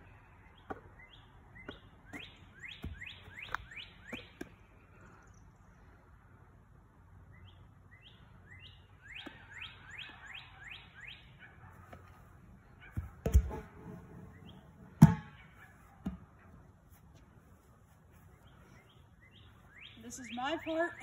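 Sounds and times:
songbird singing: 0.0s - 11.8s, 14.2s - 16.8s, 17.6s - 21.0s
ball thudding on grass: 1.6s - 4.6s, 12.9s - 13.9s, 15.0s - 16.4s.

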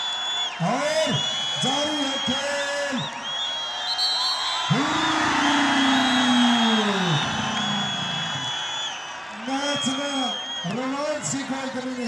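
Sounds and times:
crowd cheering: 0.0s - 12.0s
man whooping: 4.6s - 8.7s.

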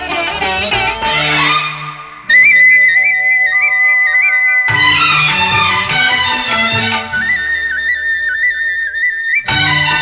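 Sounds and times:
flute melody with trills: 0.0s - 10.0s.

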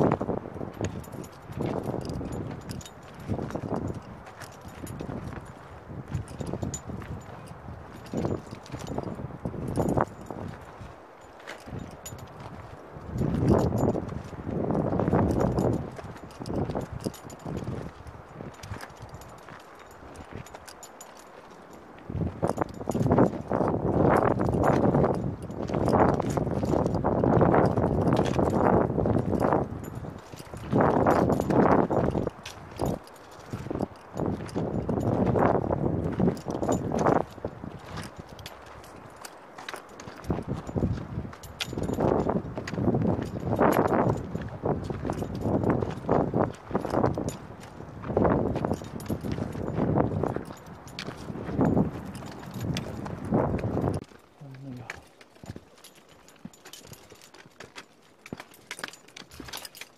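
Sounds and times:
footsteps on rock and gravel: 0.0s - 59.9s.

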